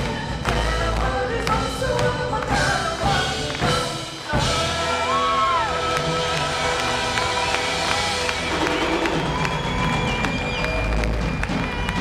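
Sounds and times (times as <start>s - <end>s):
folk band playing held notes: 2.6s - 12.0s
audience clapping: 3.4s - 12.0s
audience cheering and whooping: 4.6s - 12.0s.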